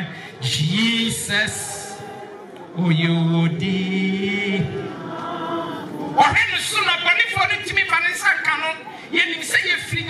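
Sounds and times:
man singing over sound system: 0.0s - 2.2s, 2.8s - 4.9s.

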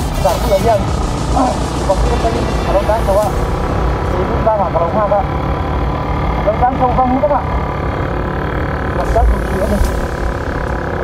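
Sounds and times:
motorcycle engine rumble: 0.0s - 11.0s.

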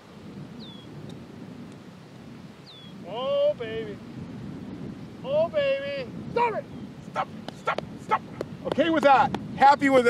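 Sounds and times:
wind and surf: 0.0s - 10.0s
men's wordless exclamations: 5.2s - 9.2s.

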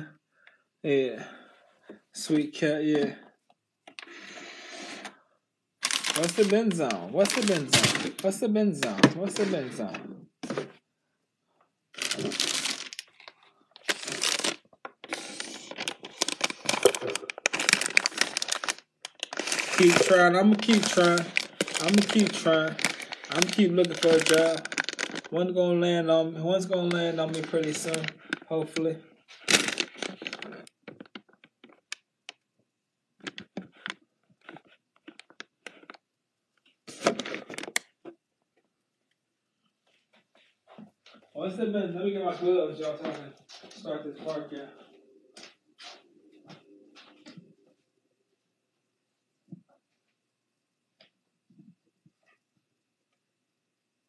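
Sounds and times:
phone handling rustling and scraping: 12.0s - 25.3s, 29.3s - 32.0s, 33.2s - 36.0s.

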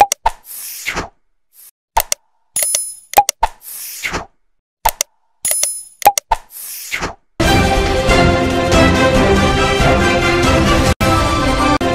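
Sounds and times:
clicks and pops: 0.0s - 1.1s, 2.0s - 7.2s
outro theme music: 7.4s - 11.9s.

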